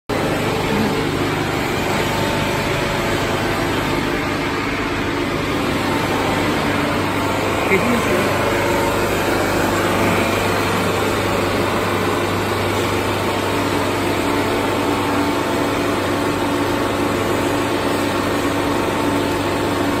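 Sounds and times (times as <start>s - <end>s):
steady machine tone: 0.1s - 20.0s
vacuum pump and motors humming: 0.1s - 20.0s.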